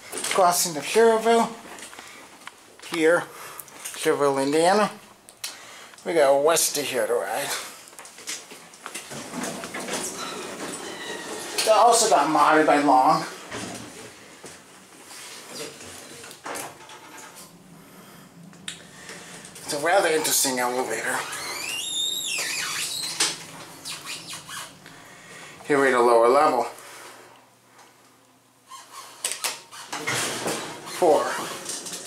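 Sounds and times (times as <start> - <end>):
elevator doors whine: 9.8 - 12.0.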